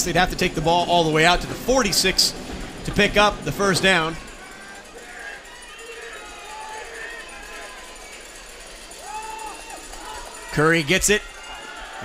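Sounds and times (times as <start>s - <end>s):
stadium ambience: 0.0s - 12.0s.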